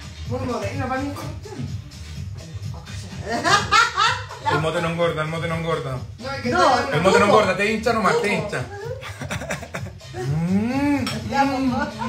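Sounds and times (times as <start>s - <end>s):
person humming mmm of enjoyment: 10.2s - 11.1s.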